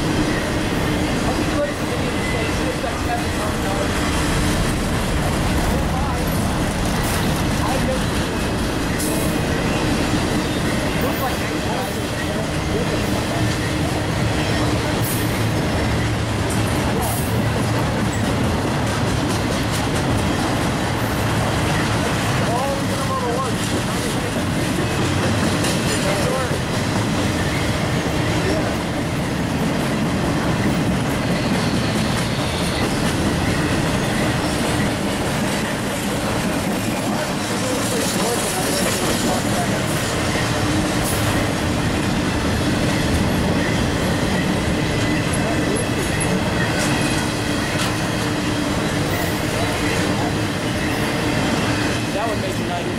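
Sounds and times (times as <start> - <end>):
freight train wheels rumbling on rail: 0.0 - 52.9.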